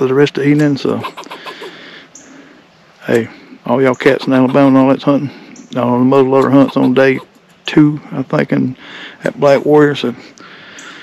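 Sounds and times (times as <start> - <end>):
high bird chirp: 3.8 - 7.7.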